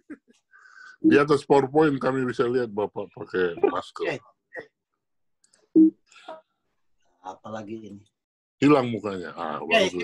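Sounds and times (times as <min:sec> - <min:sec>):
man speaking over video call: 0:01.0 - 0:04.3, 0:07.1 - 0:10.0.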